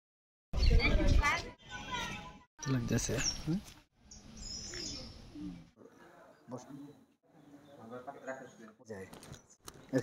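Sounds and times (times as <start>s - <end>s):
birds chirping: 0.6s - 10.0s
faint outdoor ambience: 0.6s - 10.0s.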